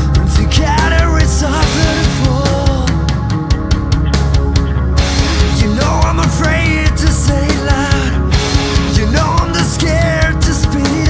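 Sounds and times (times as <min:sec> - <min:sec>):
rock song with distorted guitars: 0:00.0 - 0:11.0.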